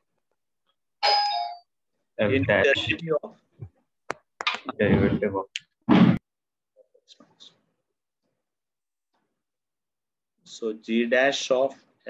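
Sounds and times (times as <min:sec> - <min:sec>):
person speaking: 0:02.2 - 0:03.5.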